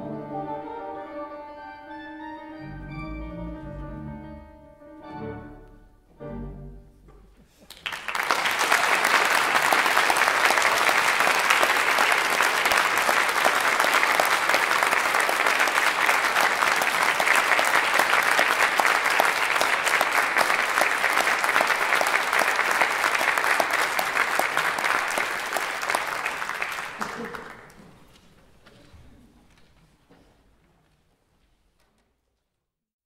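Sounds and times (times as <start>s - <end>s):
audience applauding: 7.6s - 28.2s.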